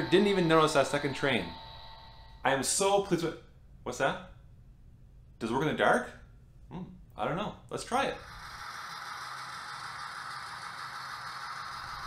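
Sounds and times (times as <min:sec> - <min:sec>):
model train whirring rattle: 0:08.2 - 0:12.0.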